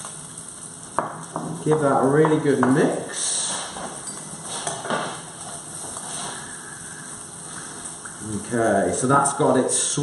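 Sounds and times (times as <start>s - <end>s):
fish sizzling in a frying pan: 0.0s - 10.0s.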